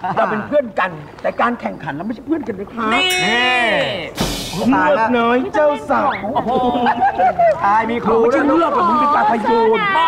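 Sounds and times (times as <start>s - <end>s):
person speaking with drawn-out vowels: 2.9s - 4.1s.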